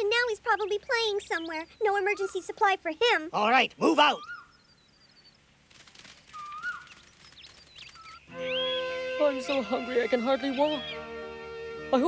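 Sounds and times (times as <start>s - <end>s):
birdlike whistling and chirps: 0.5s - 2.6s, 4.0s - 5.4s, 6.3s - 11.2s
faint rustle: 4.9s - 8.3s
background music: 8.3s - 12.0s.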